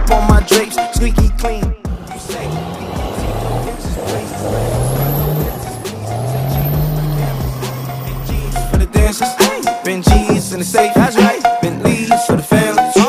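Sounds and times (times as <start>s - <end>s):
diesel truck engine revving: 1.2s - 9.2s, 9.9s - 12.0s
high turbo whistle: 2.0s - 8.8s.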